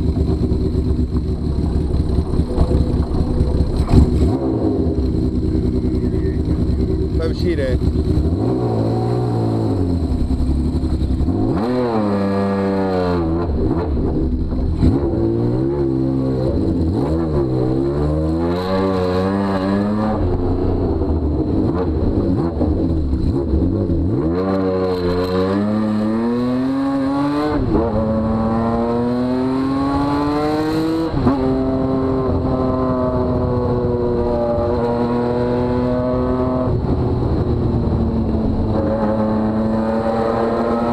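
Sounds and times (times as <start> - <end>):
motorcycle engine accelerating: 0.0 - 40.9.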